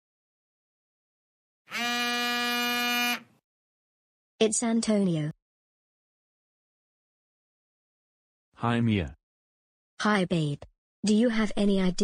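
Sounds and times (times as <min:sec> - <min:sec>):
mobile phone buzzing: 0:01.7 - 0:03.3.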